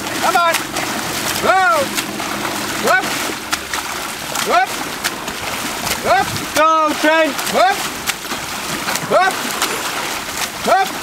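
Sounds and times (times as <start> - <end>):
water splashing from swimmer: 0.0 - 11.0.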